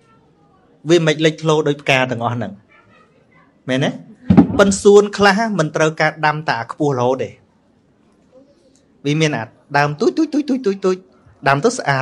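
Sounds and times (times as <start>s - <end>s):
man talking: 0.8s - 2.6s, 3.7s - 7.4s, 9.0s - 12.0s.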